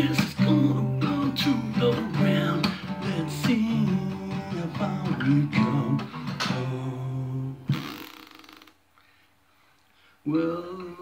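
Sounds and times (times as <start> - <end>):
acoustic guitar strum damped: 0.0 - 8.0.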